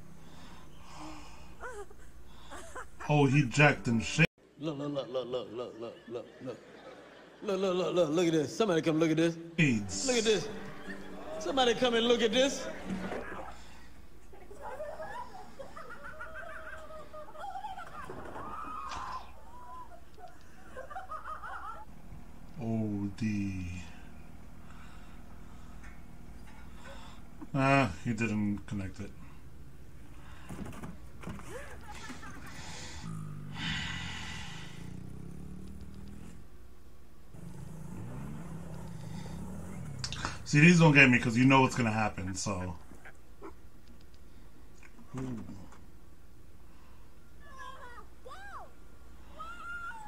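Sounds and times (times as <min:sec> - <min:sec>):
high-pitched vocal squeals: 0:17.4 - 0:20.1, 0:47.4 - 0:50.0
small engine revving: 0:31.8 - 0:36.5, 0:37.3 - 0:40.5.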